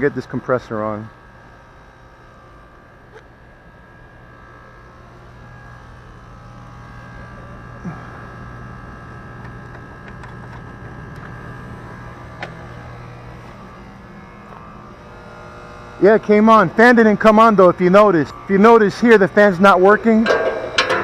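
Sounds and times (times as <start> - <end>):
compressor electric hum: 0.0 - 21.0.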